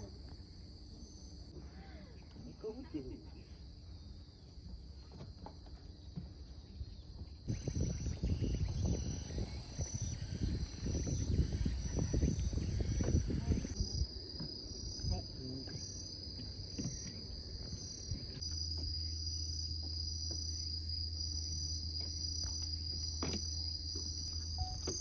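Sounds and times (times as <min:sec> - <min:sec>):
insects trilling: 0:00.0 - 0:25.0.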